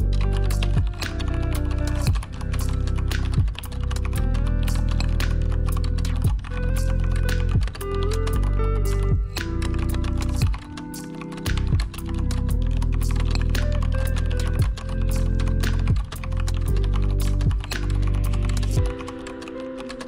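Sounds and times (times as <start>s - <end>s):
background music with low notes: 0.0s - 20.0s
rapid keyboard typing: 0.0s - 20.0s.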